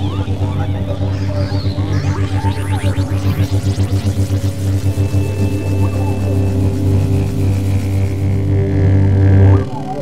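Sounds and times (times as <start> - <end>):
deep droning soundtrack music: 0.0 - 10.0.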